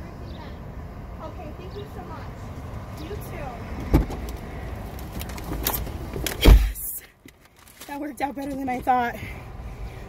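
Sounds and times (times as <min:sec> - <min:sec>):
handling clicks and rustling: 0:04.0 - 0:06.5, 0:07.2 - 0:09.0
sharp thump: 0:06.4 - 0:06.8.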